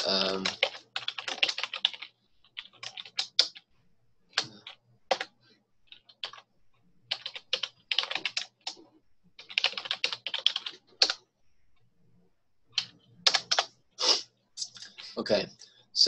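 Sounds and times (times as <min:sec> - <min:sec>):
typing on computer keyboard: 0:00.0 - 0:03.6, 0:04.4 - 0:05.3, 0:05.9 - 0:06.5, 0:07.1 - 0:08.8, 0:09.4 - 0:11.2, 0:12.7 - 0:13.7.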